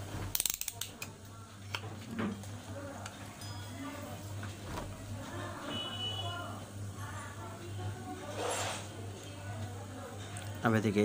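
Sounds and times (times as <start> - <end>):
sharp ratchet-like clicks: 0.3 - 1.1.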